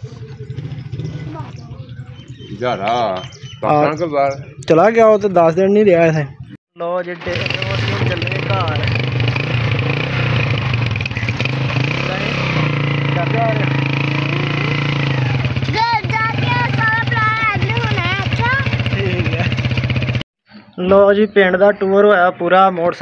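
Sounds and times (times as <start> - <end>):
motorcycle engine running: 0.0 - 4.8, 6.2 - 20.2
voices: 0.0 - 19.8, 20.6 - 23.0.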